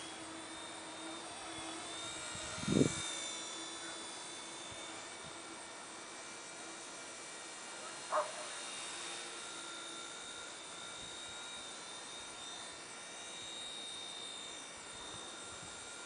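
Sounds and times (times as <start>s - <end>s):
rc helicopter whine: 0.0s - 16.0s.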